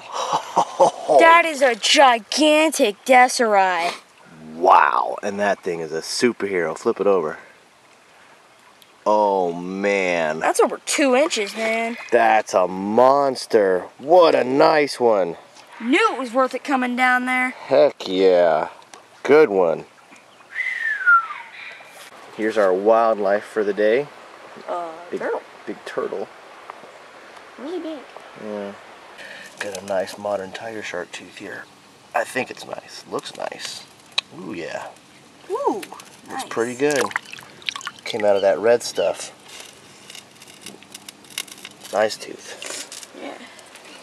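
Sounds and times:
creek water trickling: 0.0s - 44.0s
person whistling descending note: 20.5s - 21.5s
small crackles and clicks: 29.2s - 30.1s, 32.5s - 35.1s, 35.8s - 38.0s, 39.1s - 44.0s.

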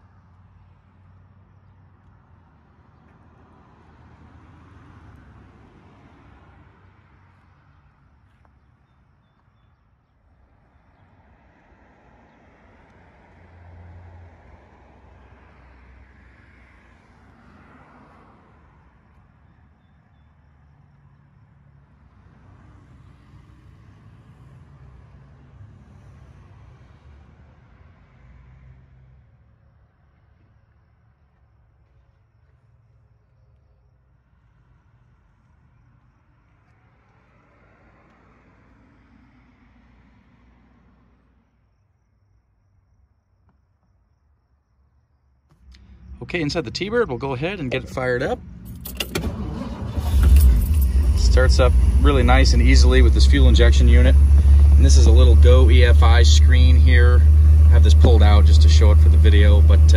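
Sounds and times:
distant road traffic rumble: 0.0s - 59.9s.

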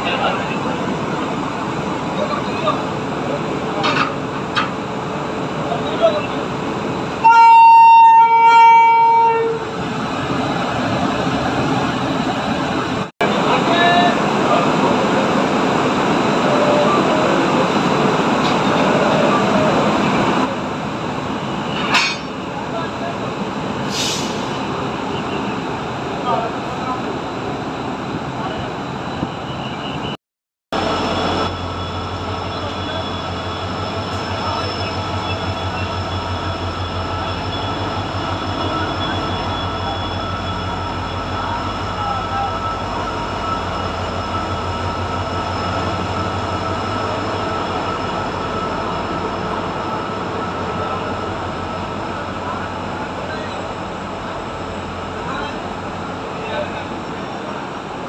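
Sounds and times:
train rumbling past: 0.0s - 30.2s, 30.8s - 58.0s.

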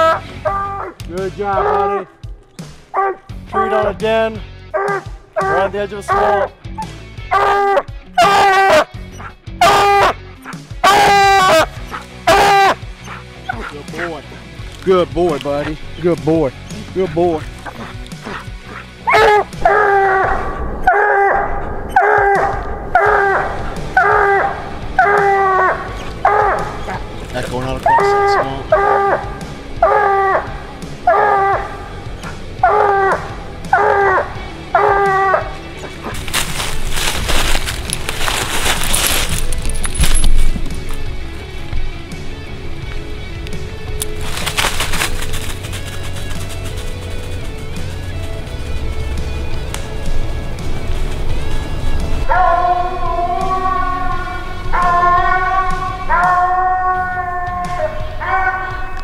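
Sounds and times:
dog barking loudly: 1.6s - 2.0s, 2.9s - 3.9s, 4.7s - 6.5s, 7.3s - 14.1s, 17.5s - 20.3s, 24.0s - 27.0s, 27.8s - 36.6s, 54.7s - 56.6s.

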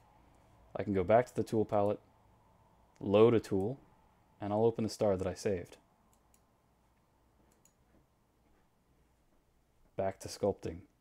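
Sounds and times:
computer mouse clicks: 7.4s - 7.9s.

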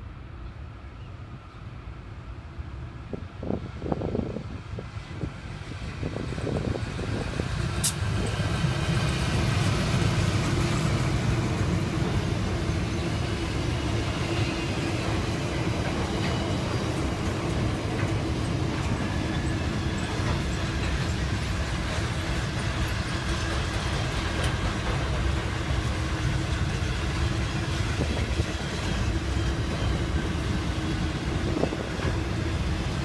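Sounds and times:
diesel locomotives running past: 0.0s - 33.0s
freight train rolling by: 0.0s - 33.0s.

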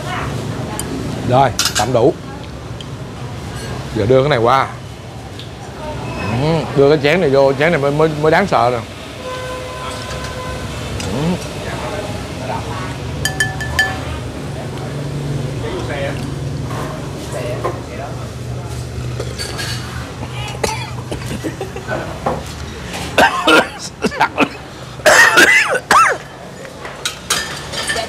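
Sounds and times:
spoon and bowls clinking: 13.2s - 14.1s, 26.2s - 28.0s.

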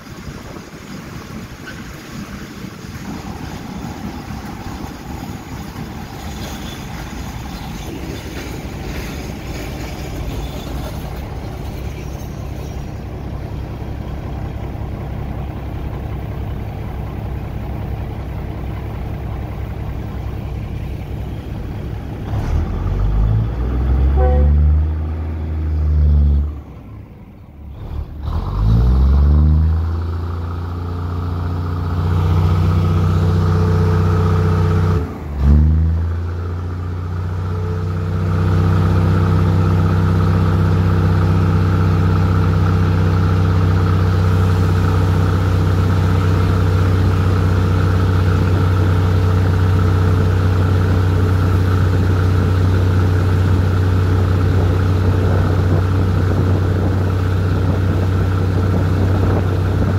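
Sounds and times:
diesel train engine: 0.0s - 59.9s.

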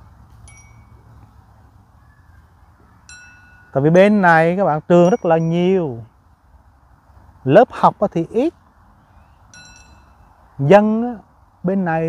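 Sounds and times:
high bell-like ring: 0.3s - 1.2s, 3.1s - 6.0s, 9.5s - 10.3s.

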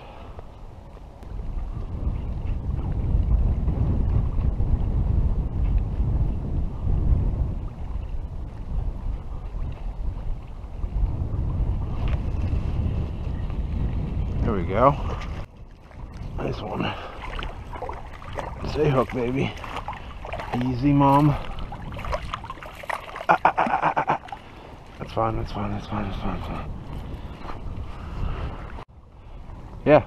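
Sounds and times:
gusty wind buffeting microphone: 0.0s - 30.0s.

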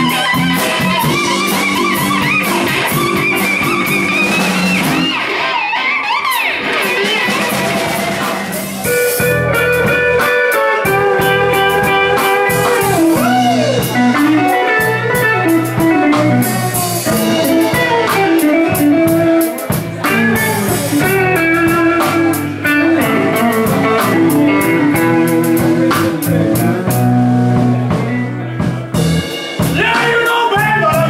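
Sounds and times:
drum kit: 0.0s - 31.0s
electric guitars: 0.0s - 31.0s.

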